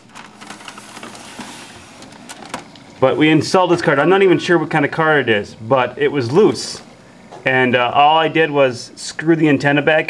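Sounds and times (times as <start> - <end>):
computer case scraping on desk: 0.1 - 2.6.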